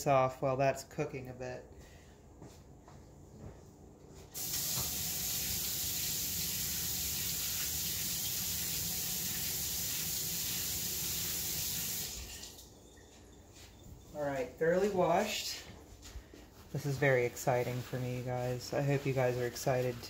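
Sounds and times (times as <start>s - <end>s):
tap water running: 4.4s - 12.8s.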